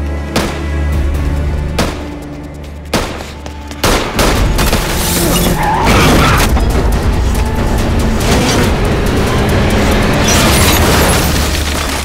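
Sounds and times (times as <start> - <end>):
car racing at speed: 5.1 - 11.5.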